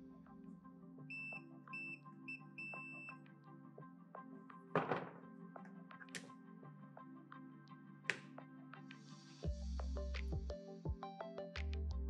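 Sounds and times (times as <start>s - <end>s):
background music: 0.0s - 12.0s
multimeter beeps: 1.1s - 3.2s.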